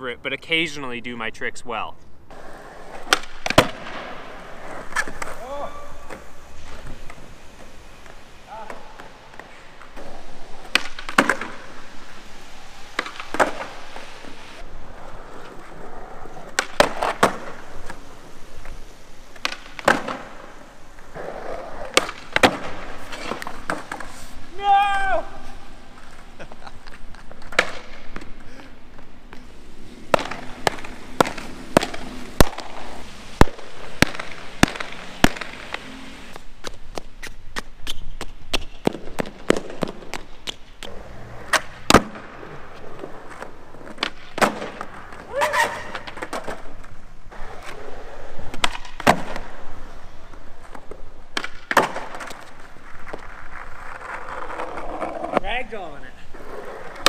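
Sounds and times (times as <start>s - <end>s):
skateboard rolling on concrete: 0.0s - 57.0s
skateboard clacking on landings: 2.3s - 12.1s, 15.4s - 18.1s, 18.7s - 24.2s, 25.2s - 49.7s, 50.3s - 55.5s.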